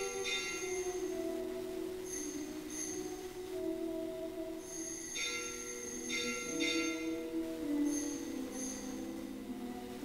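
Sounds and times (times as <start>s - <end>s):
bells ringing: 0.0s - 9.8s
music with long held notes: 0.0s - 10.0s.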